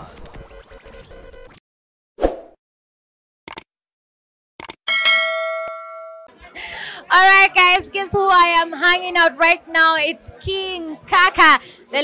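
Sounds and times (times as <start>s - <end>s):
notification bell chime: 4.9s - 6.3s.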